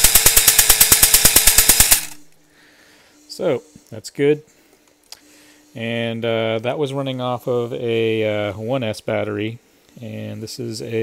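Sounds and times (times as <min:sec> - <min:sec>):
toy blaster firing rapid clatter: 0:00.0 - 0:02.2.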